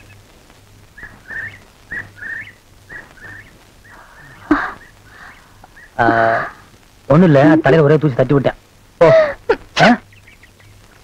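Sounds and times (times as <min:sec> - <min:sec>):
high whistled call: 0:01.0 - 0:06.0.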